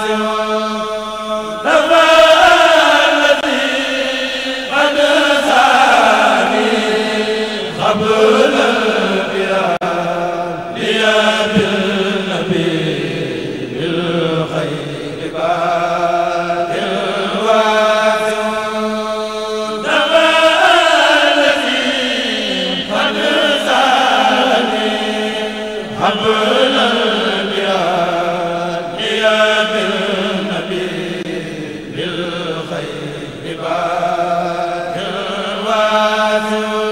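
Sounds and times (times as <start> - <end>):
men chanting in unison: 0.0 - 36.9.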